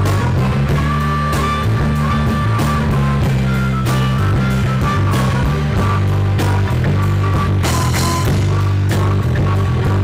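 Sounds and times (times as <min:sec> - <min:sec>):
drum kit with cymbals: 0:00.0 - 0:10.0
electric bass: 0:00.0 - 0:10.0
lead instrument high notes: 0:00.0 - 0:10.0.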